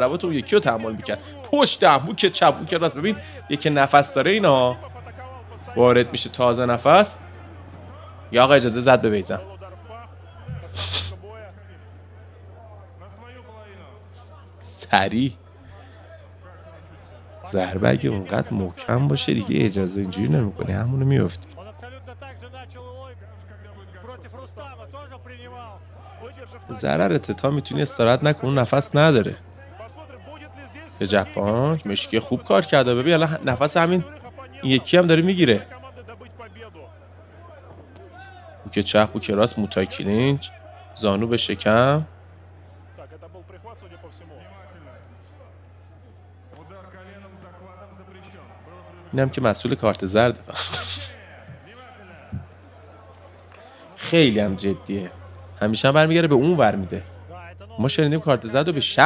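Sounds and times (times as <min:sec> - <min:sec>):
faint indistinct voices: 0:00.0 - 0:59.0
short hiss: 0:10.6 - 0:11.2, 0:50.6 - 0:51.1.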